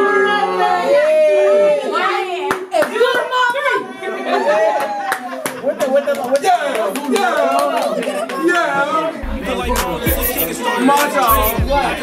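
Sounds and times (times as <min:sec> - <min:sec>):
people talking and cheering: 0:00.0 - 0:12.0.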